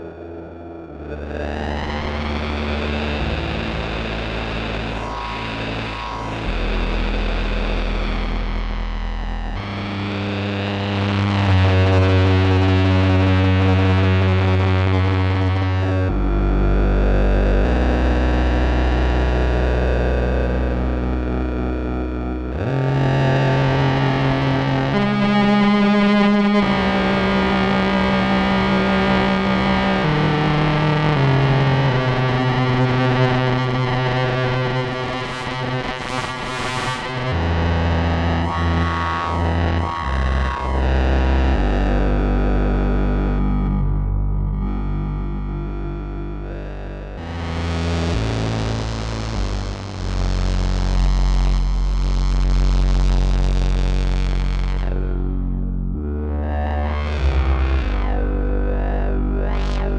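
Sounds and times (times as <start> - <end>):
buzzy analog synthesizer notes: 0.0 - 59.9.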